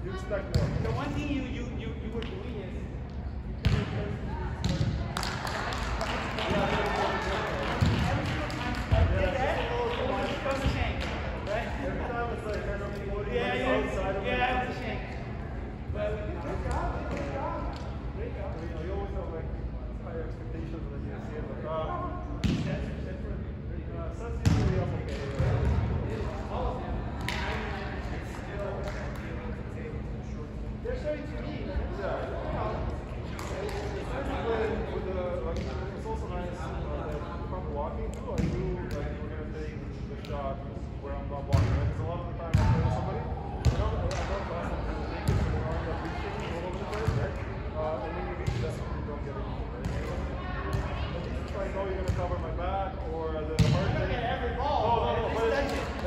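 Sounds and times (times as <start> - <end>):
people talking in a hall: 0.0 - 56.0
volleyball thumps: 3.6 - 5.4.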